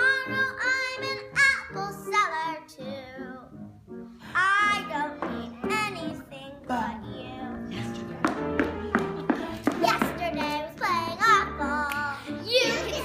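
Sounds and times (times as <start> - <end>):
girl singing: 0.0 - 3.6, 4.3 - 8.0, 9.6 - 13.0
musical accompaniment: 0.0 - 13.0.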